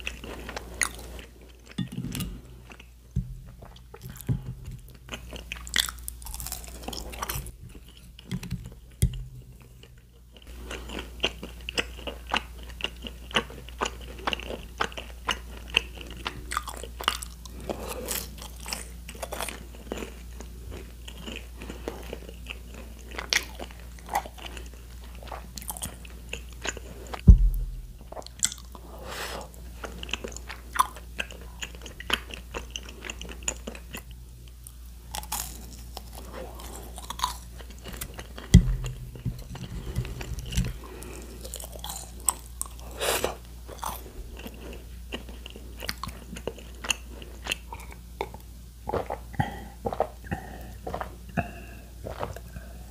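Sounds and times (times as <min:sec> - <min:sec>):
chewing and crunching food: 0:00.0 - 0:27.2, 0:28.0 - 0:52.9
steady low hum: 0:00.0 - 0:52.9
loud low thumps: 0:27.2 - 0:28.2.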